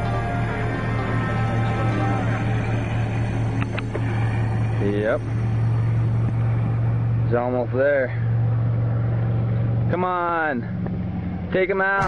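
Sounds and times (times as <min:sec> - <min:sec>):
music soundtrack: 0:00.0 - 0:09.2
vehicle engine idling: 0:00.0 - 0:12.0.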